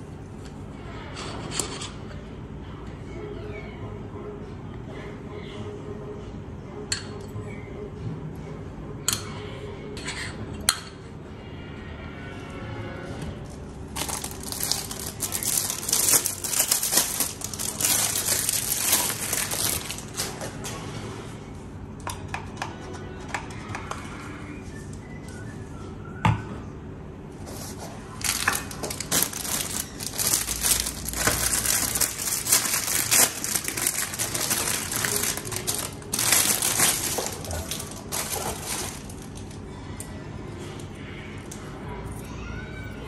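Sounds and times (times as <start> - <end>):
plastic wrapper crinkling: 13.9 - 20.5, 28.2 - 39.6.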